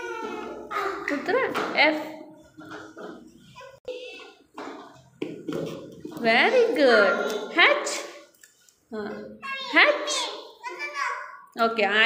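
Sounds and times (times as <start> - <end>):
faint children's voices: 0.0 - 1.1.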